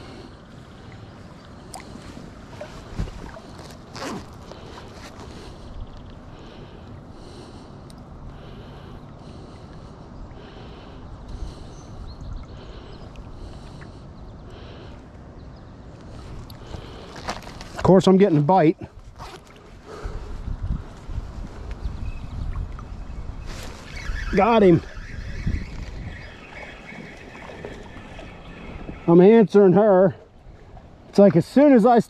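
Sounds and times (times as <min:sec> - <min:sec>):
river water flowing: 0:00.0 - 0:11.7, 0:23.5 - 0:32.0
wind rumble on microphone: 0:11.1 - 0:14.4, 0:18.8 - 0:29.2
faint high chirring: 0:23.6 - 0:29.4.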